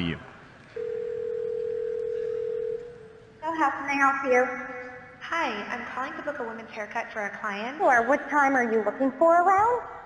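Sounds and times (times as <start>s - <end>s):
telephone ringback tone: 0.8s - 3.2s.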